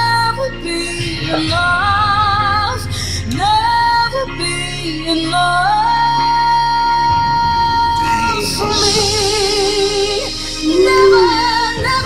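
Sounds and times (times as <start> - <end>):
quiet backing music: 0.0 - 12.0
woman singing a ballad: 0.0 - 12.0.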